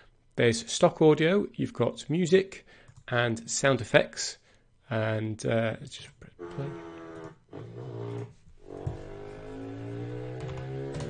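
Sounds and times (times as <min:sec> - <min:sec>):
motorcycle engine revving: 0:08.7 - 0:11.0.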